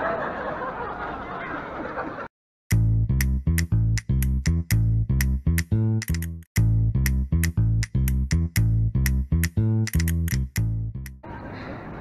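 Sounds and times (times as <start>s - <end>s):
music with deep punchy bass: 2.7s - 11.1s
sharp clicks in music: 2.7s - 11.2s
street noise: 9.5s - 12.0s
crowd babble: 11.2s - 12.0s.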